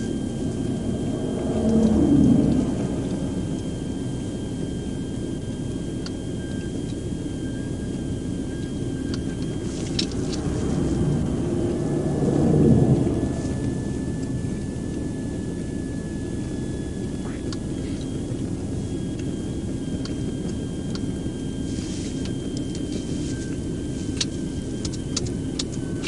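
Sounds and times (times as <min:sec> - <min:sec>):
low road rumble: 0:00.0 - 0:26.0
pickup truck passing: 0:10.0 - 0:14.6.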